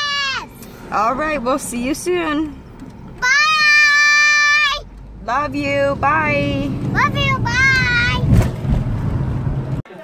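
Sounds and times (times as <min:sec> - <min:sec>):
engine and road hum in car: 0:00.0 - 0:09.9.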